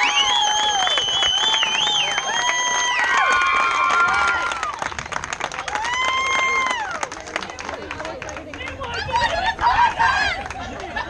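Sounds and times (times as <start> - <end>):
excited crowd voices: 0.0 - 11.0
scattered clapping: 0.0 - 11.0.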